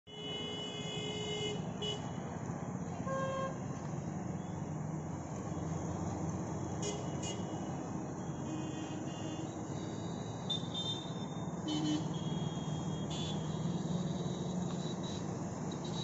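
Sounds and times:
vehicle horns honking: 0.1 - 2.2, 3.0 - 3.6, 6.8 - 7.8, 8.4 - 16.0
road traffic rumble: 0.1 - 16.0.

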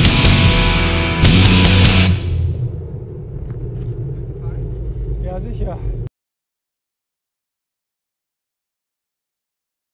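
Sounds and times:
loud rock music: 0.0 - 2.6
wind rumble on microphone: 2.2 - 6.1.

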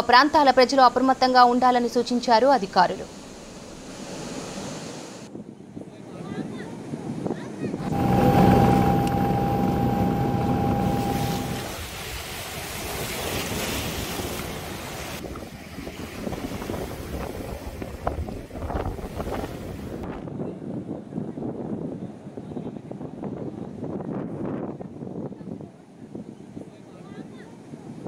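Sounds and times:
waves slapping: 3.0 - 5.3, 9.6 - 20.0
steady level-pitched drone: 7.8 - 11.8
wind buffeting microphone: 12.8 - 28.0.

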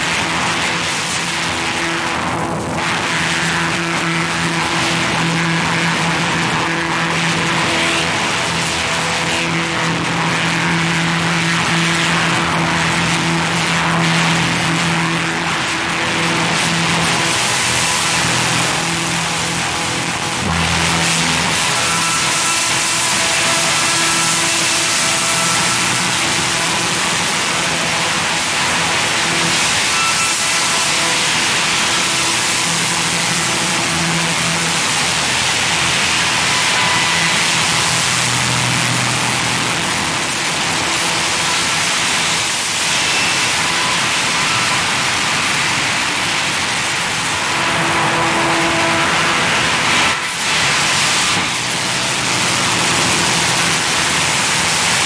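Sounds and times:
loud dense hiss: 0.0 - 55.0
low droning tones: 0.0 - 55.0.

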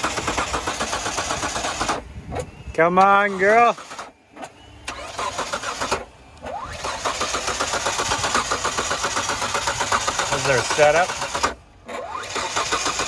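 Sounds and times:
car engine cranking on starter: 0.0 - 13.0
car engine running: 3.8 - 13.0.

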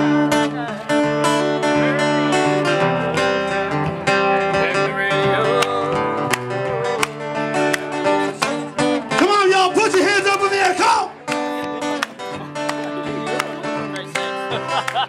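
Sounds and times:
country band playing: 0.0 - 15.0
strummed acoustic guitar: 0.0 - 15.0.

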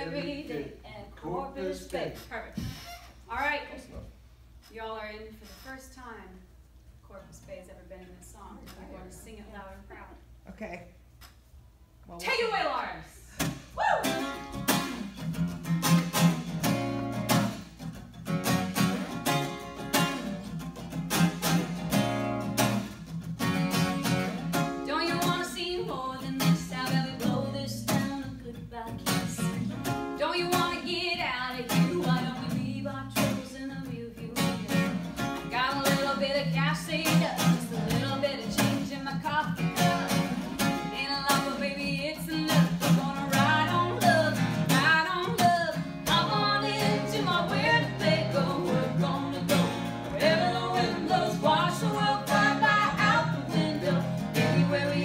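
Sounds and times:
woman singing: 0.0 - 0.6, 24.8 - 55.0
acoustic guitar strumming: 13.4 - 55.0.

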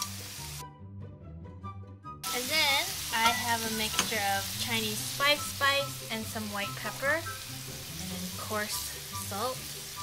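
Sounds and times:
oil sizzling in frying pan: 0.0 - 0.6, 2.2 - 10.0
background music: 0.0 - 10.0.

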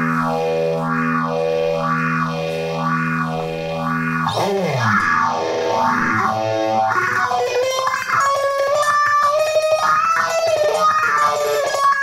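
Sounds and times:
electric guitar sustained chord: 0.0 - 12.0.

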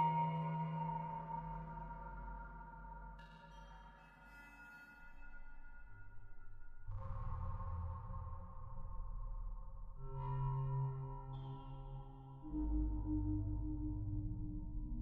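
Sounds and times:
deep low drone: 6.8 - 15.0.

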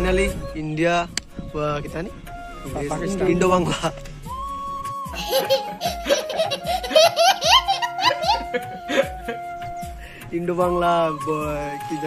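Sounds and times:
background music: 0.0 - 12.0
toddler laughing: 5.2 - 9.0.

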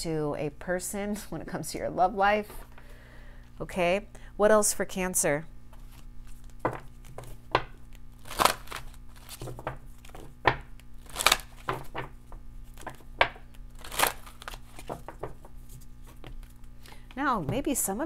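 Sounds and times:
faint steady hum: 0.0 - 18.0
cards slapping and snapping: 5.8 - 16.8.

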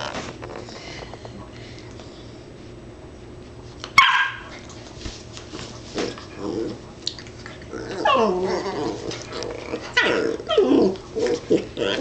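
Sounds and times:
dog barking sharply: 4.0 - 4.5.

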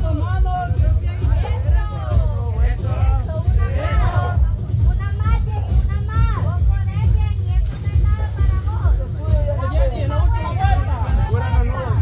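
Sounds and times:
loud music with heavy bass: 0.0 - 12.0
people shouting: 1.2 - 4.4.

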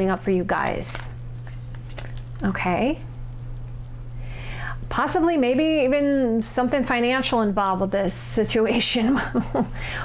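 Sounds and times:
low electrical hum: 0.0 - 10.0
person speaking: 2.4 - 3.1.

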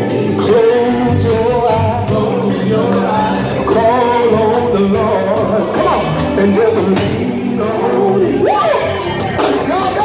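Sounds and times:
drum kit: 0.0 - 10.0
keyboard: 0.0 - 10.0
male vocal group singing: 0.0 - 10.0.

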